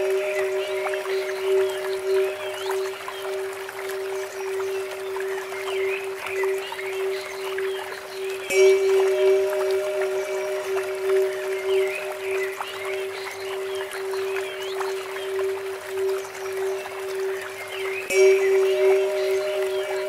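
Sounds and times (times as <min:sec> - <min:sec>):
birds chirping: 0:00.0 - 0:20.0
water trickling from fountain: 0:00.0 - 0:20.0.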